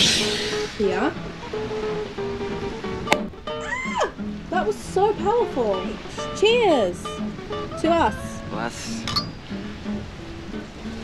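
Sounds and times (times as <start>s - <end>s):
background music: 0.0s - 11.0s
champagne glasses clinking: 9.0s - 9.4s.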